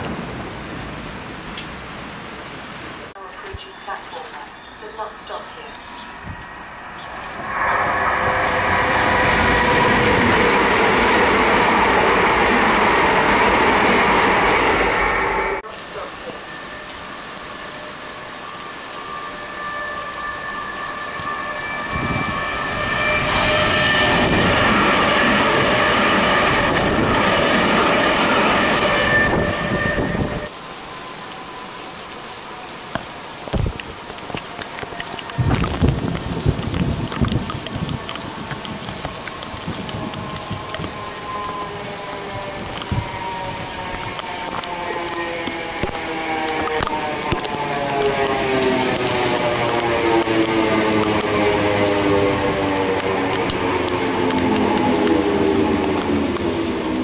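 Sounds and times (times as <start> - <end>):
steady rain: 0.0 - 57.0
electric train whine: 4.1 - 57.0
train wheels rumbling: 4.9 - 16.9, 20.4 - 30.5.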